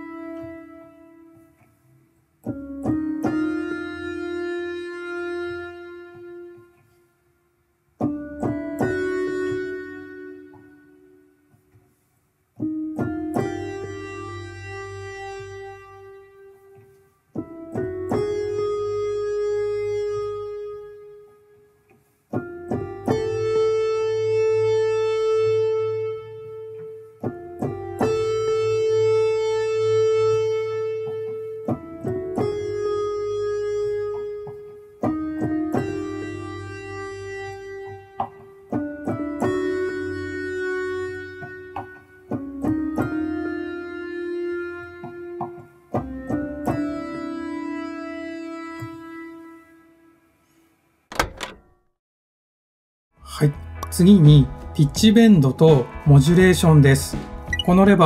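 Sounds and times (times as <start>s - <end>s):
bell-toned synth chords: 57.5s - 57.9s.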